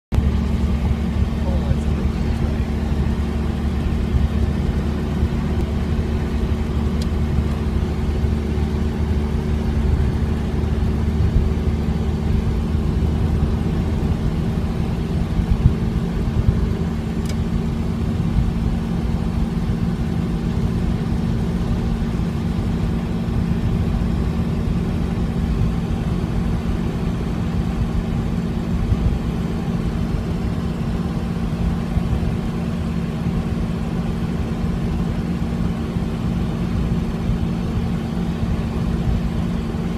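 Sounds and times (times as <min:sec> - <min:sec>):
car engine hum: 0:00.1 - 0:39.9
road noise: 0:00.1 - 0:39.9.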